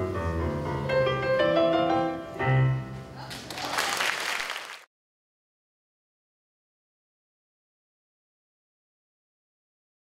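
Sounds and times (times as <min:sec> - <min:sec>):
song with piano: 0:00.0 - 0:03.3
audience applause: 0:03.3 - 0:04.9.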